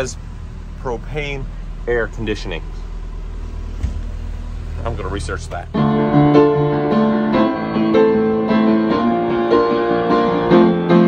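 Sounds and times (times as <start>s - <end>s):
engine idling low drone: 0.0s - 11.0s.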